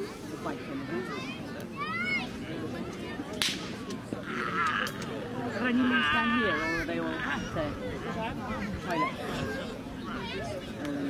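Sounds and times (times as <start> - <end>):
faint background voices: 0.0 - 11.0
sharp crack: 3.3 - 4.0.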